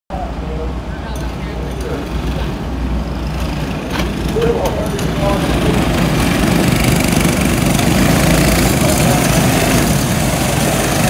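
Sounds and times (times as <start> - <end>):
people talking: 0.1 - 2.8, 3.9 - 10.9
go-kart engines humming: 0.1 - 11.0.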